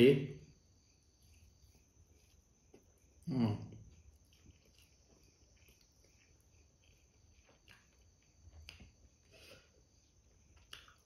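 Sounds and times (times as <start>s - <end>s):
chewing clicks: 3.9s - 9.0s, 10.4s - 11.0s.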